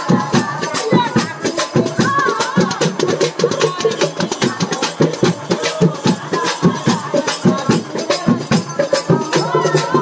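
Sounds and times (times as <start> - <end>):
frame drums and barrel drum: 0.0 - 10.0
jingling ankle bells: 0.0 - 10.0.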